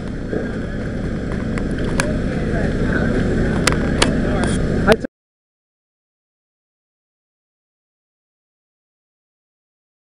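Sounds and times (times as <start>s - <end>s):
low outdoor rumble: 0.0s - 5.1s
faint background voices: 1.8s - 4.9s.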